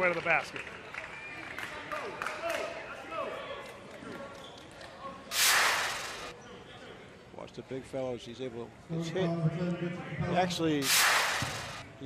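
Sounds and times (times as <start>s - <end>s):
faint gym background noise: 1.1s - 12.0s
loud whoosh sound effect: 5.3s - 6.3s.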